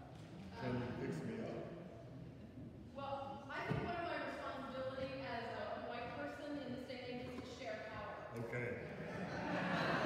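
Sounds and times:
man speaking in a church: 0.6s - 2.0s, 8.3s - 9.1s.

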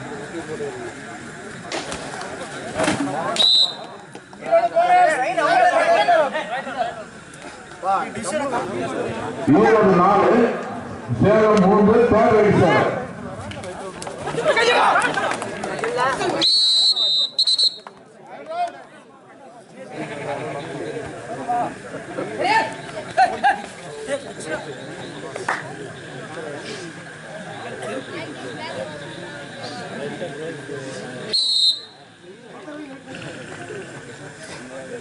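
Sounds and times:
referee's whistle: 3.4s - 3.9s, 16.4s - 17.9s, 31.3s - 32.0s.

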